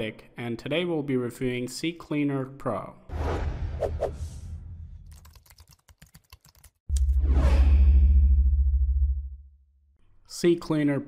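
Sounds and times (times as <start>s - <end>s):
whoosh: 3.1s - 5.1s, 6.9s - 9.5s.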